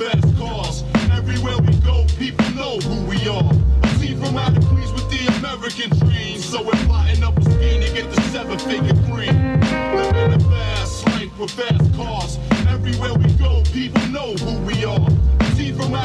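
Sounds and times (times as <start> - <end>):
deep bass beat: 0.0 - 16.0
person rapping: 0.0 - 16.0.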